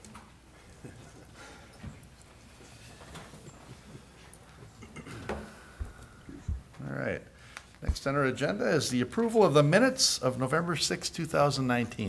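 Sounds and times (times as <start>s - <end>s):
dull low thumps: 5.8s - 6.7s.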